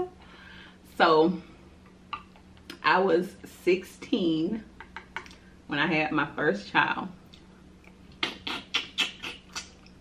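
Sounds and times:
wet chewing and lip smacking: 0:07.3 - 0:10.0.

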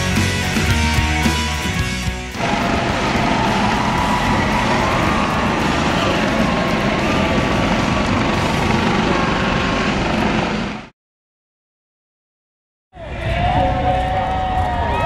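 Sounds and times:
helicopter hovering: 0:00.0 - 0:10.9.

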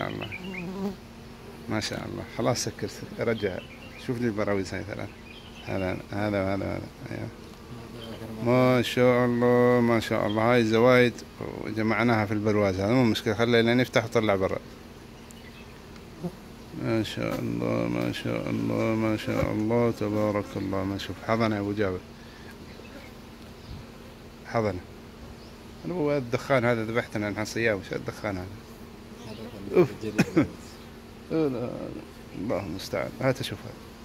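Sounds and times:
honeybees buzzing: 0:00.0 - 0:34.0.

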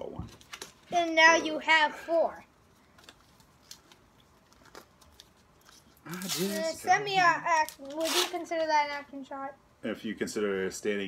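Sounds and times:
cards and foil wrappers crinkling: 0:00.3 - 0:01.2, 0:02.7 - 0:06.8, 0:07.5 - 0:08.7.

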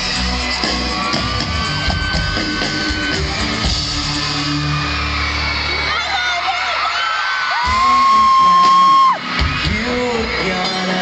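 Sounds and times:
live pop-rock band playing: 0:00.0 - 0:06.6, 0:07.6 - 0:11.0.

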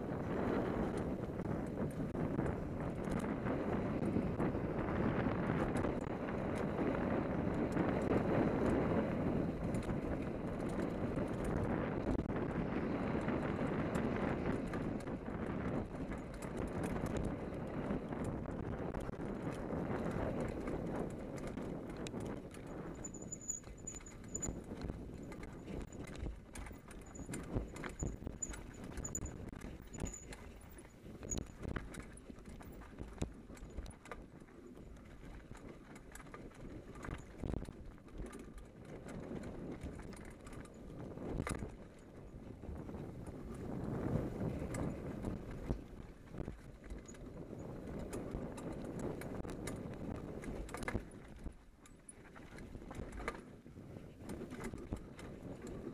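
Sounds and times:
bike tyres rumbling over dirt: 0:00.0 - 0:55.9
wind noise on microphone: 0:00.0 - 0:55.9.

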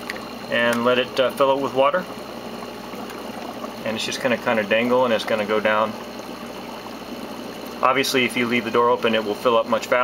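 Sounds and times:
water bubbling and rushing: 0:00.2 - 0:09.1.

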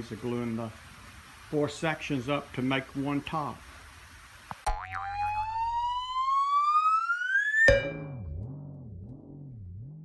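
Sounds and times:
rising whistle tone: 0:05.0 - 0:08.7.

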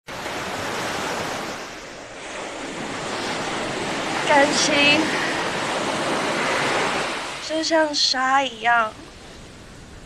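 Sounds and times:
ocean surf on beach: 0:00.1 - 0:10.0.

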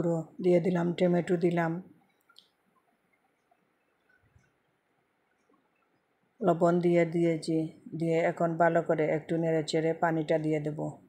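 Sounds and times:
person speaking: 0:00.0 - 0:01.9, 0:06.4 - 0:11.0.

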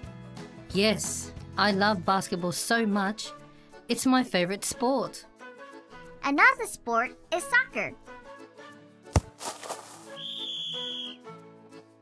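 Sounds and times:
quiet background music: 0:00.0 - 0:12.0
whistle blast: 0:10.1 - 0:11.2.

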